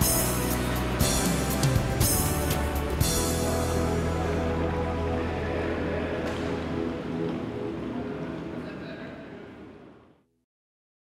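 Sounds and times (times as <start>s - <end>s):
background music held chord: 0.0s - 9.4s.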